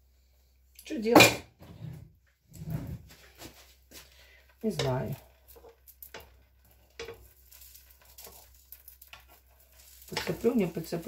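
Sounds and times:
pancake batter frying: 3.1 - 11.0
utensil clicking and scraping pan: 4.4 - 11.0.

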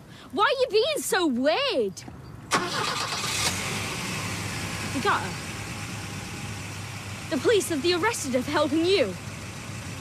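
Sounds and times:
car engine idling: 2.5 - 10.0.

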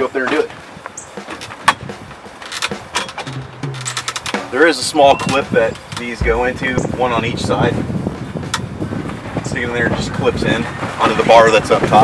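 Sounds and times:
ladder clicks: 2.4 - 4.5
metal poles knocking: 2.4 - 4.6.

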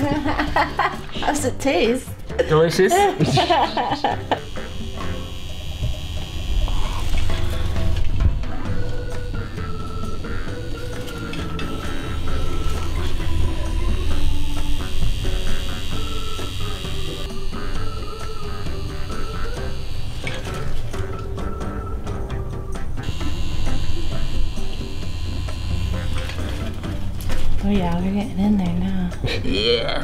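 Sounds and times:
background music with bass: 0.0 - 30.0.

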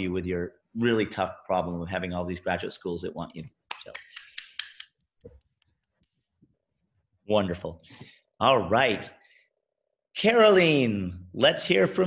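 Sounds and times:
person clapping: 3.7 - 4.9.

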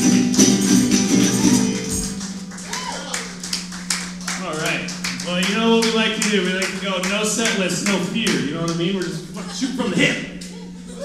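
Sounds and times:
voices: 4.2 - 11.0.

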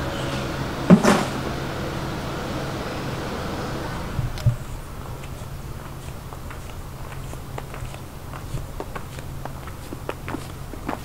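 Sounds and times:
steady low hum: 0.0 - 11.0
light clicking footsteps: 4.3 - 11.0.

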